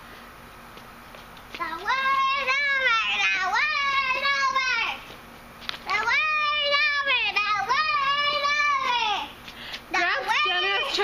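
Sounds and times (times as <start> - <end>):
girl singing high notes: 5.9 - 11.0.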